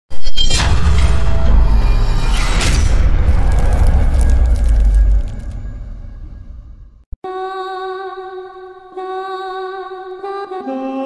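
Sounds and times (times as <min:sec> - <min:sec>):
deep bass boom: 0:00.8 - 0:07.0.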